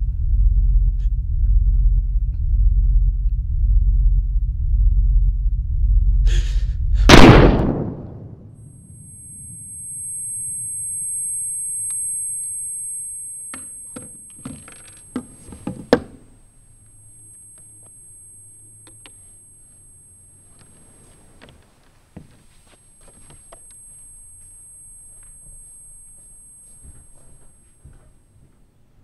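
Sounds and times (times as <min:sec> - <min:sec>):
high steady ringing tone: 0:00.0 - 0:06.3, 0:08.0 - 0:29.0
loud gunshot bang: 0:07.1 - 0:08.4.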